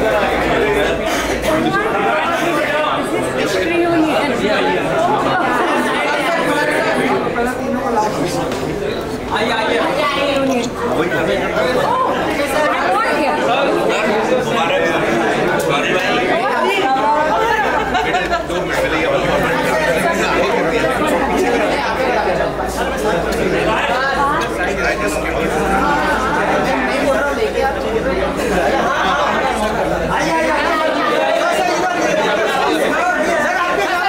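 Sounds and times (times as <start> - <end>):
crowd chatter: 0.0 - 34.0.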